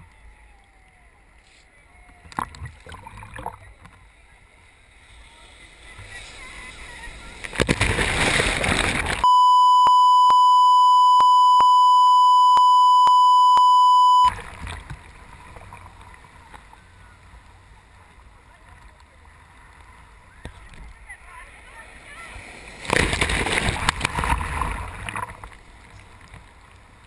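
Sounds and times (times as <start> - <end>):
sea surf washing: 4.0 - 27.0
wave breaking and splashing: 4.5 - 9.3, 21.4 - 26.6
steady test tone: 9.2 - 14.4.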